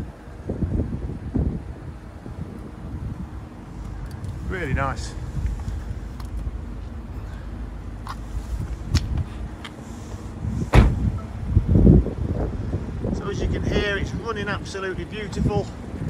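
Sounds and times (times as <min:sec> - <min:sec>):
car engine idling: 0:03.4 - 0:11.8
loud thump: 0:10.7 - 0:11.3.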